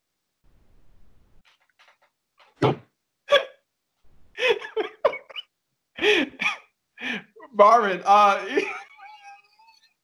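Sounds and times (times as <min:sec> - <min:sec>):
man laughing hard: 0:04.4 - 0:05.4, 0:06.0 - 0:07.2, 0:08.5 - 0:09.8.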